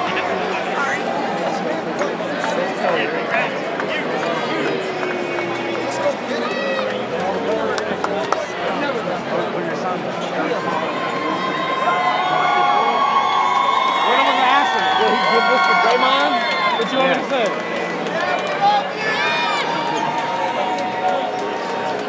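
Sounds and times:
babble of voices: 0:00.0 - 0:22.0
crowd cheering and whooping: 0:11.0 - 0:17.3.

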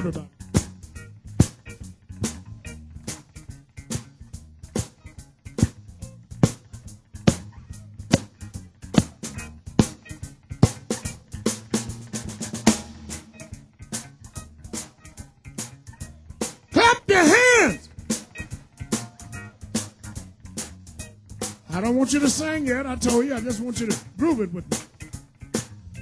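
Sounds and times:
drum kit backbeat: 0:00.0 - 0:03.3, 0:04.7 - 0:26.0
bass line: 0:00.0 - 0:14.9, 0:15.6 - 0:24.9, 0:25.5 - 0:26.0
guitar: 0:00.0 - 0:26.0
snare rimshot strokes: 0:06.4 - 0:06.6, 0:08.1 - 0:08.4, 0:09.0 - 0:11.1.

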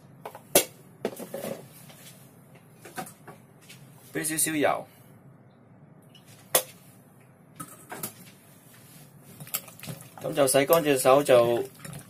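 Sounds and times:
faint room hiss: 0:00.0 - 0:11.9.

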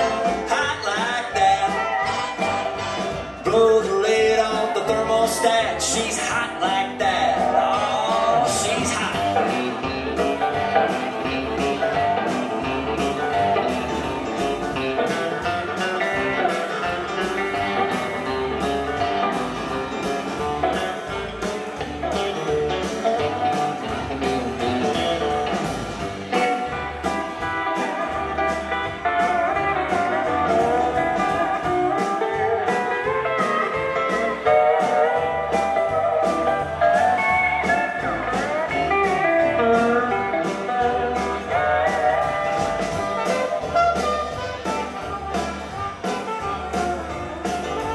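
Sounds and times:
bass: 0:00.0 - 0:47.9
guitar lead: 0:00.0 - 0:47.9
steady drum beat: 0:00.0 - 0:47.9.

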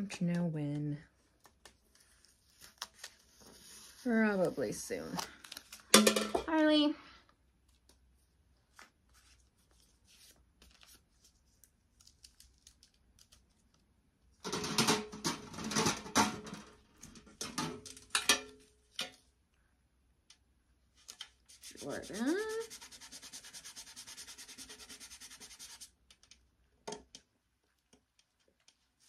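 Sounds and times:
metal pails clattering: 0:05.9 - 0:06.6, 0:14.4 - 0:18.5.

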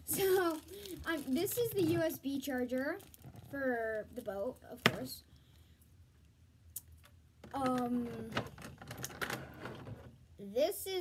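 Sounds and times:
plastic packaging clicks and crinkles: 0:00.0 - 0:05.1.

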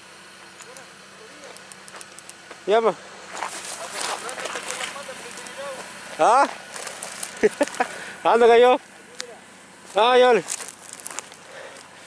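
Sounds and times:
faint distant calls: 0:00.3 - 0:12.0
footsteps rustling through grass: 0:03.2 - 0:08.0, 0:09.8 - 0:12.0.

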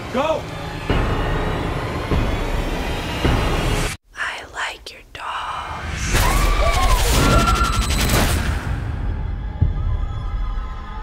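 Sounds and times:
faint whispery sounds: 0:04.1 - 0:05.9.

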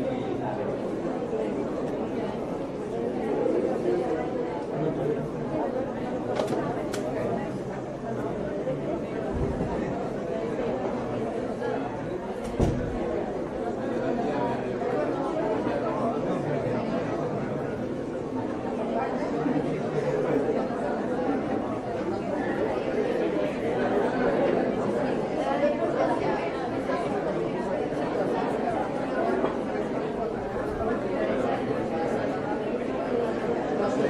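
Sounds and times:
murmur of voices: 0:00.0 - 0:34.0.

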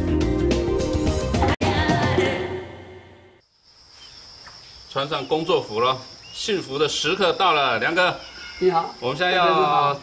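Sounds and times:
music: 0:00.0 - 0:03.1
high-pitched buzzing insect chorus: 0:03.4 - 0:10.0.

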